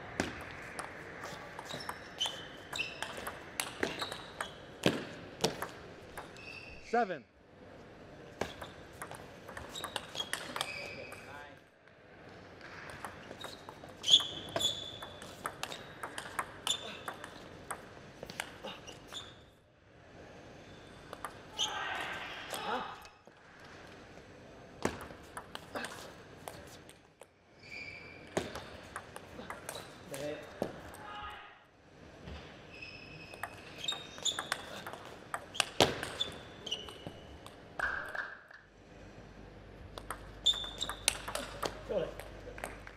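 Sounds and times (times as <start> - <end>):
table tennis ball clicking: 1.6 - 6.4, 8.4 - 11.3, 12.9 - 18.6, 33.3 - 38.3, 39.9 - 42.9.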